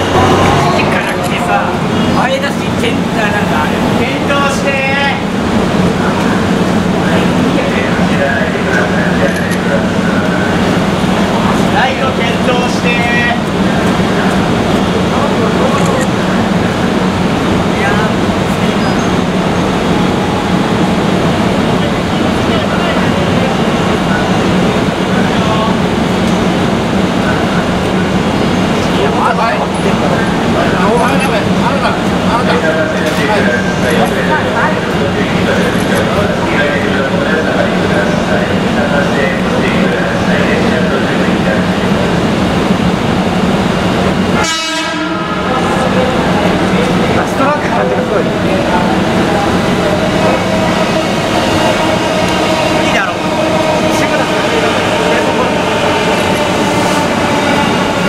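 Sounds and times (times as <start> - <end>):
people talking: 0.0 - 44.5, 45.4 - 58.0
locomotive machinery humming: 0.0 - 58.0
train horn blast: 44.4 - 45.6.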